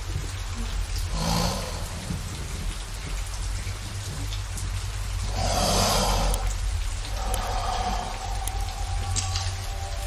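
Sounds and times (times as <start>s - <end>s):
constant low rumble: 0.0s - 10.0s
steady rain falling: 0.0s - 10.0s.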